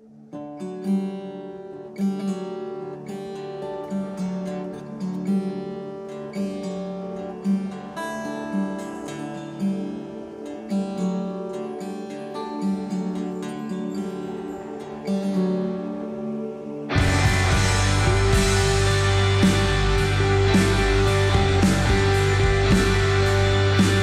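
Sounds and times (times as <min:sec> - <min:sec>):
guitar strums: 0:00.4 - 0:24.0
rock guitar picking: 0:16.3 - 0:24.0.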